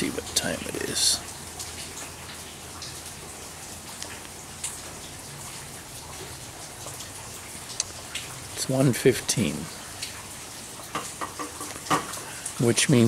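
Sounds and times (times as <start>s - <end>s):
light rain falling: 0.0s - 13.0s
raindrops tapping: 0.0s - 13.0s.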